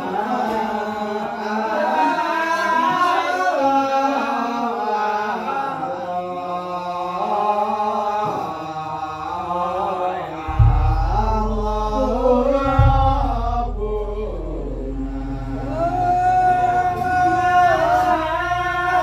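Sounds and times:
melodic chanting voice: 0.0 - 19.0
deep drum boom: 10.5 - 17.3.

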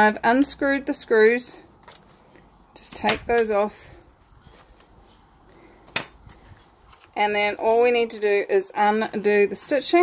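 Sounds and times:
wallet handling: 5.9 - 10.0.

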